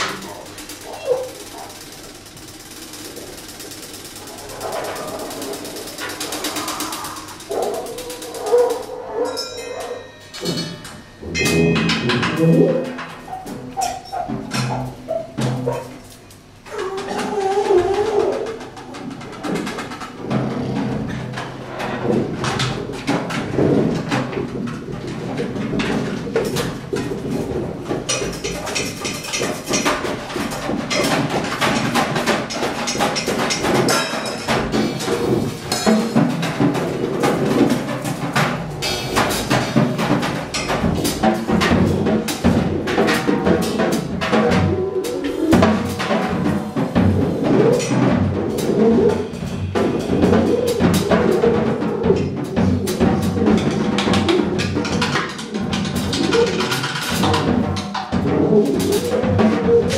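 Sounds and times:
percussion knocks and clicks: 0.0s - 59.9s.

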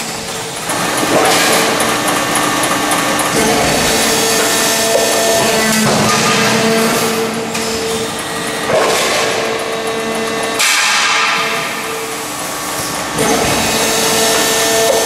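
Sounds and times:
steady machine hum: 0.0s - 15.0s.

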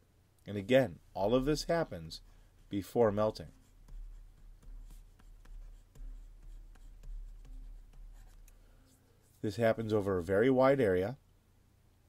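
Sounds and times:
low steady hum: 0.0s - 12.0s
stylus tapping and scratching: 1.1s - 10.7s.

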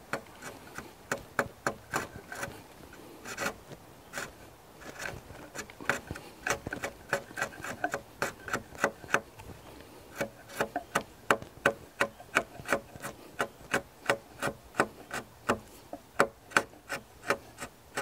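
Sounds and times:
chisel paring wood: 0.0s - 2.5s, 3.2s - 3.6s, 4.2s - 9.3s, 10.1s - 18.0s.

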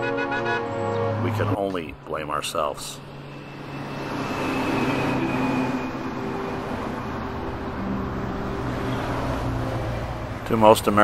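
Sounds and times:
steady traffic hum: 0.0s - 11.0s.

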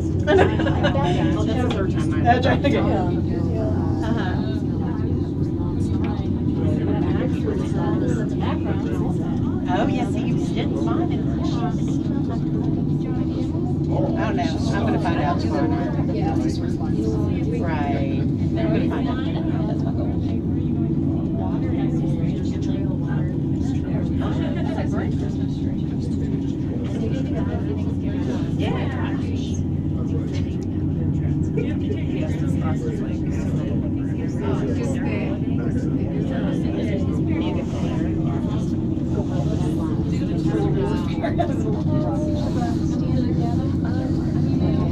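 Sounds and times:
cable car cabin hum: 0.0s - 44.9s
people talking indistinctly: 0.0s - 44.9s.

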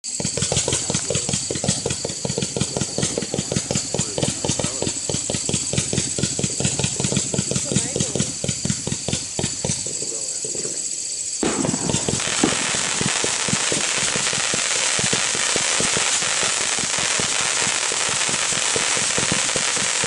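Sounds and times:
firework launch thumps: 0.1s - 20.0s.

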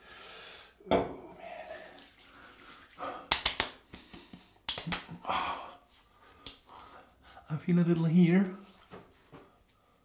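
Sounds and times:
hands slapping face: 3.2s - 5.6s, 6.3s - 6.8s.

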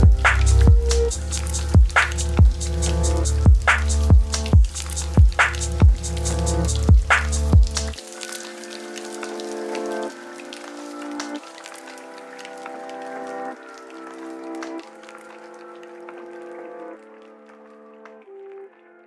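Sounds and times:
light crackle: 0.0s - 19.0s.

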